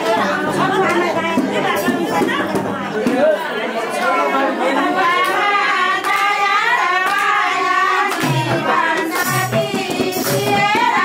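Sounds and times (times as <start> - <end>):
overlapping talk: 0.0 - 11.0
women singing together: 0.0 - 11.0
hand-clapping: 6.0 - 6.4, 7.0 - 7.4, 8.0 - 10.8.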